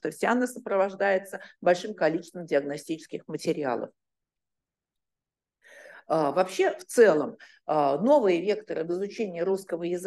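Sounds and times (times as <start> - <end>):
short in-breath: 5.6 - 6.1.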